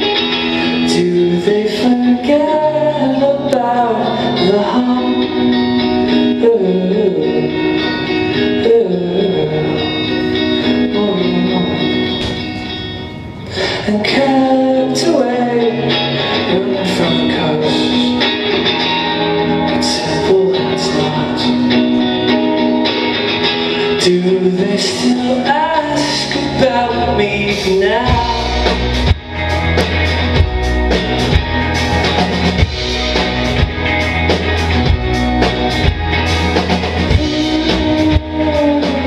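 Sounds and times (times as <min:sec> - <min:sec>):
rock band playing live: 0:00.0 - 0:39.0.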